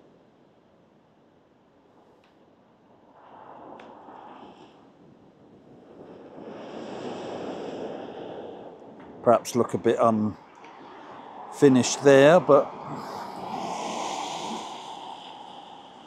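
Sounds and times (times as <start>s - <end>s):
road traffic passing: 10.4s - 16.0s.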